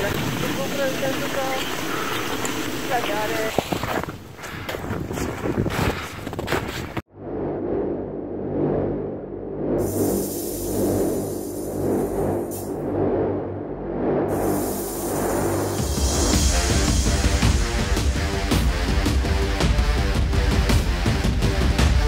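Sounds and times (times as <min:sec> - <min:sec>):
wind buffeting microphone: 0:00.0 - 0:07.0.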